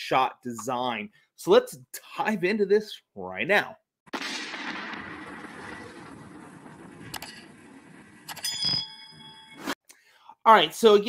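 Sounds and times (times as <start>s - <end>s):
metallic clang ringing: 8.3s - 9.6s.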